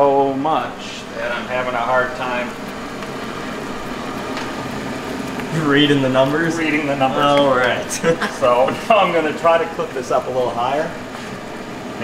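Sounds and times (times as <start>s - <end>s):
syrup boiling hard in kettle: 0.0s - 12.0s.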